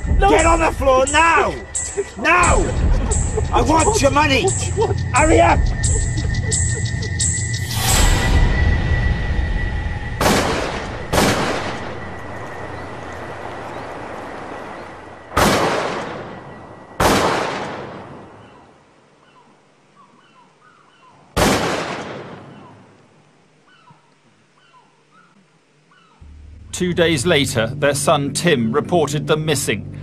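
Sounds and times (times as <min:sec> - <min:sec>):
small birds chirping: 0:00.0 - 0:07.8, 0:11.8 - 0:15.4, 0:18.1 - 0:21.4, 0:22.4 - 0:26.3
shotgun blasts echoing: 0:10.2 - 0:11.9, 0:15.4 - 0:16.4, 0:17.0 - 0:18.4, 0:21.4 - 0:22.9.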